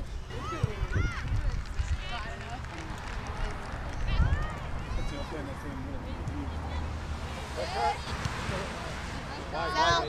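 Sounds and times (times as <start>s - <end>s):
distant shouts of players and spectators: 3.1s - 10.0s.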